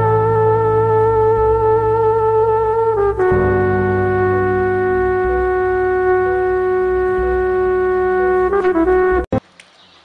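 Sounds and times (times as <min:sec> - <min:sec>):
low bass: 0:00.0 - 0:09.3.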